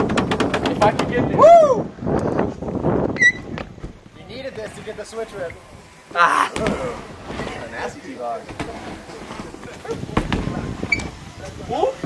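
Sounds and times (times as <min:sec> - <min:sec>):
tyres rolling on wooden ramp: 0:00.0 - 0:01.4, 0:02.4 - 0:12.0
bike landing thump: 0:02.4 - 0:04.1, 0:06.5 - 0:11.2.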